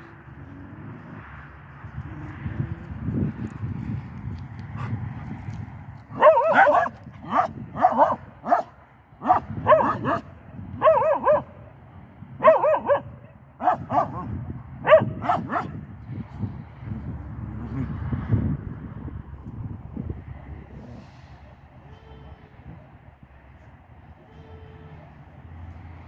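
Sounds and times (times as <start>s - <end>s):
dog barking: 6.1s - 11.6s, 12.4s - 15.8s.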